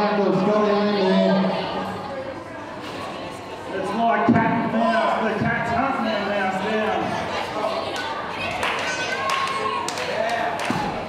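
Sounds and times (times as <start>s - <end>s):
voices in a hall: 0.0s - 11.0s.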